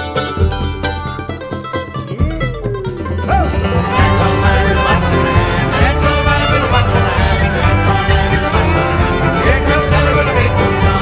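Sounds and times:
banjo: 0.0 - 11.0
bluegrass band music: 0.0 - 11.0.

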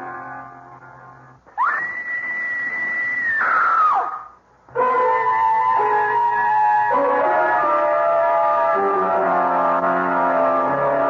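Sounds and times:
shrill scream-like wail: 1.6 - 11.0.

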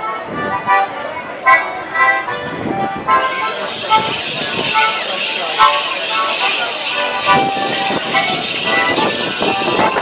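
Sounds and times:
jingling leg bells: 3.3 - 10.0
squeezebox dance tune: 3.3 - 10.0.

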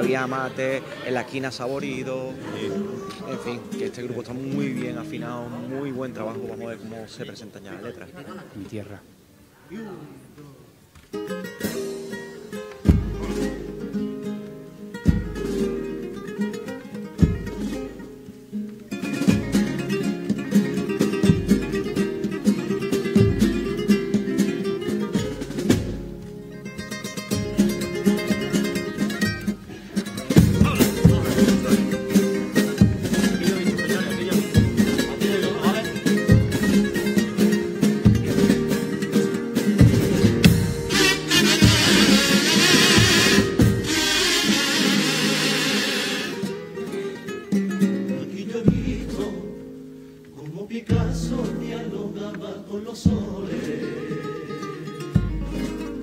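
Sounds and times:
flamenco guitars playing: 0.0 - 7.6, 10.2 - 56.0
deep drum strikes: 12.8 - 13.8, 15.1 - 15.9, 17.2 - 17.9, 21.2 - 22.0, 30.3 - 35.3, 36.0 - 38.9, 39.8 - 44.2, 48.7 - 49.2, 53.1 - 53.7.

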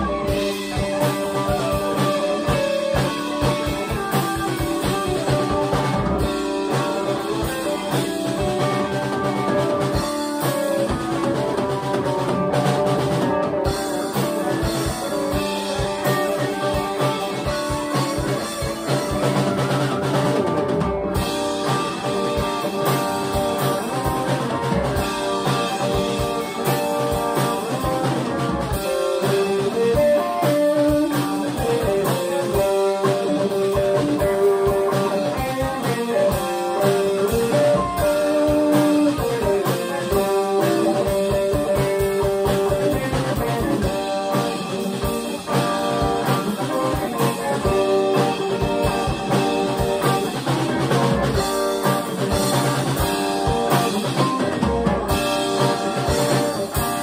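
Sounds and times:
drum kit drumming: 0.0 - 57.0
electric guitars: 0.0 - 57.0.

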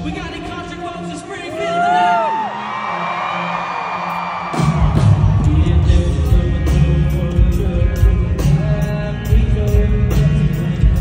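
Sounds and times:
crowd whooping and cheering: 1.4 - 5.9
drums and bass: 4.5 - 11.0
live country band: 4.5 - 11.0.

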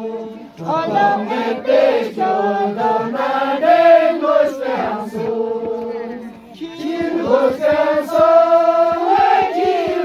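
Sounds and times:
group chanting in long notes: 0.0 - 10.0.

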